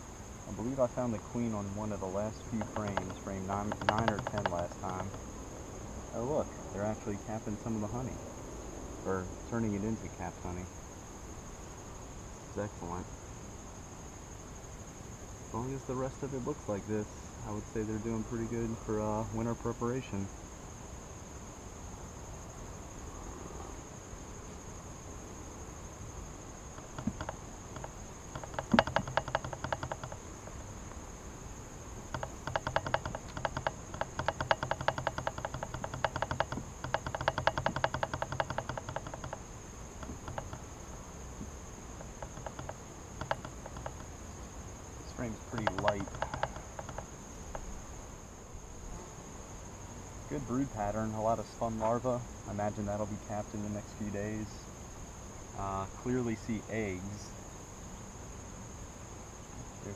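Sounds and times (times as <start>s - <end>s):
crickets trilling: 0.0s - 59.9s
bees buzzing: 25.4s - 50.2s.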